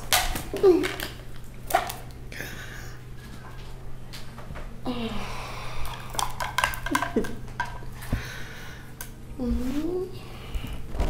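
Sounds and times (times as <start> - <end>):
woman humming: 4.8 - 5.8, 9.4 - 10.3.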